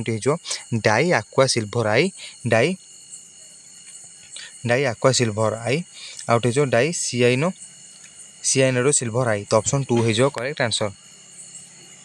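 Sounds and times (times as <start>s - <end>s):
man speaking: 0.0s - 2.8s, 4.6s - 7.6s, 8.4s - 11.0s
high-pitched chirring: 0.0s - 12.0s.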